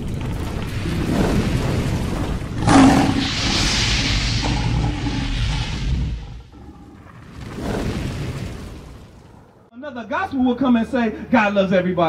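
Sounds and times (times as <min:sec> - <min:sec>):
sudden boom: 0:00.0 - 0:08.8
low rumble: 0:00.0 - 0:09.4
long hissing whoosh: 0:02.5 - 0:07.1.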